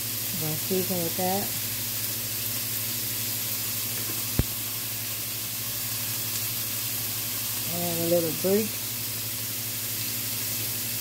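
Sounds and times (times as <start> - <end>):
beef sizzling in oil: 0.0 - 11.0.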